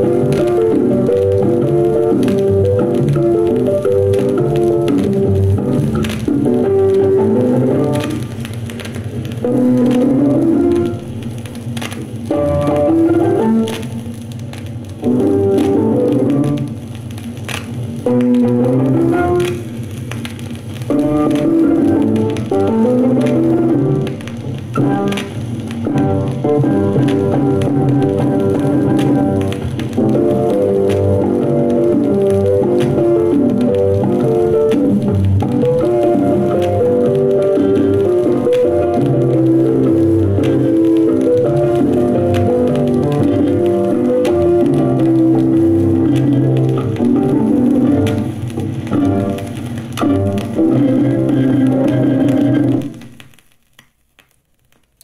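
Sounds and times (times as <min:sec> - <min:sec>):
instrumental music from vinyl record: 0:00.0 - 0:55.0
stylus clicks in record groove: 0:00.0 - 0:55.0.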